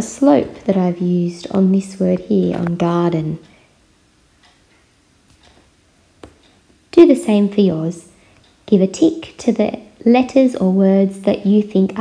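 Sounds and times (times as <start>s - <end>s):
woman speaking: 0.0s - 3.5s, 6.9s - 12.0s.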